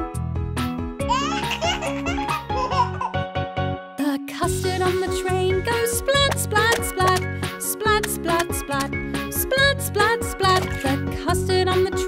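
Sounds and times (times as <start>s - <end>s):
children's background music: 0.0s - 12.0s
baby laughing: 1.0s - 3.2s.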